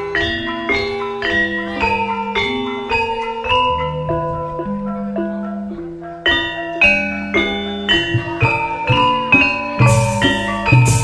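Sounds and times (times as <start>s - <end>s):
gamelan music: 0.0s - 11.0s
metallophones striking ringing notes: 0.0s - 11.0s.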